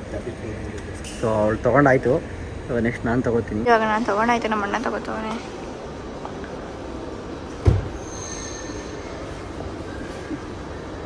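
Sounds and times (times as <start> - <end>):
terminal hall background noise: 0.0 - 11.0.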